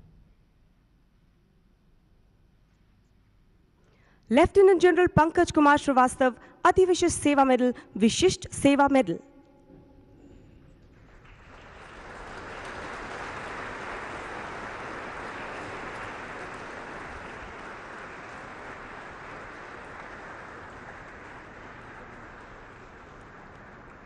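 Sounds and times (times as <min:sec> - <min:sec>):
audience applauding: 0:10.9 - 0:24.0.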